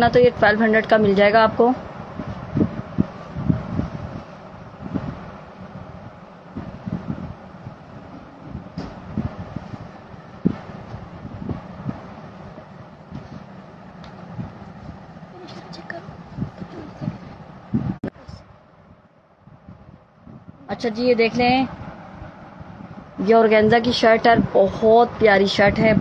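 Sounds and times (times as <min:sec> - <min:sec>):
steady background hiss: 0:00.0 - 0:26.0.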